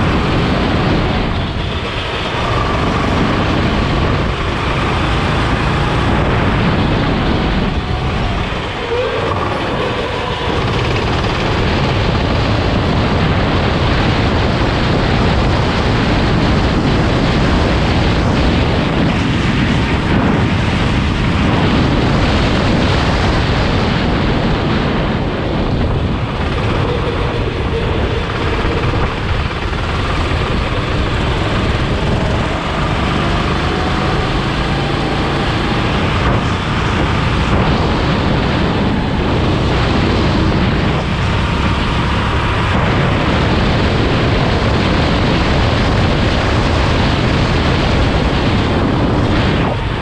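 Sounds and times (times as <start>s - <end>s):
wind buffeting microphone: 0.0s - 50.0s
kart engine running flat out: 25.9s - 44.8s.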